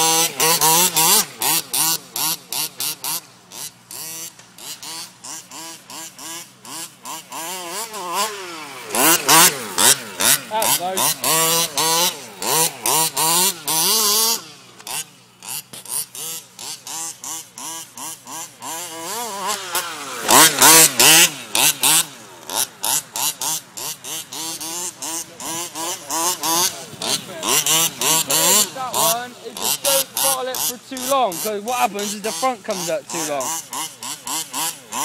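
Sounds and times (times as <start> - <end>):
small two-stroke engine revving: 0.0 - 35.0.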